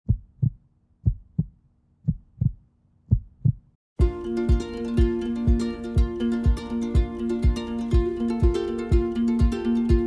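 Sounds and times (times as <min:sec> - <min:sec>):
heartbeat thumps: 0:00.0 - 0:03.8.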